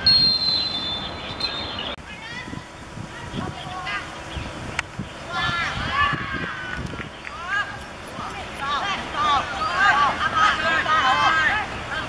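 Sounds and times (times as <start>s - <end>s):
referee's whistle blast: 0.0s - 1.6s.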